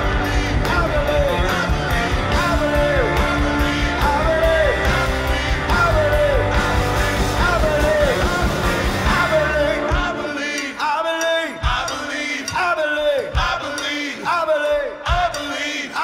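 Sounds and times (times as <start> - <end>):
live rock band: 0.0 - 14.0
sung vocals: 0.0 - 16.0.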